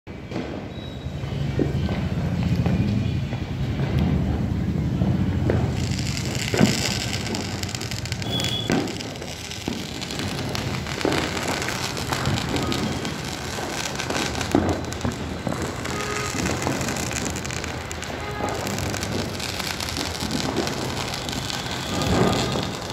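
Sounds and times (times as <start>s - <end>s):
firecrackers popping and banging: 0.1s - 22.9s
distant voices: 1.1s - 22.9s.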